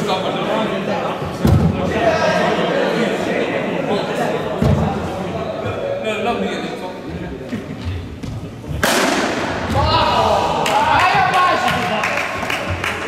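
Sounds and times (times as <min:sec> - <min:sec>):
cricket ball hit crack: 0:08.8 - 0:09.4
players shouting: 0:09.6 - 0:12.8.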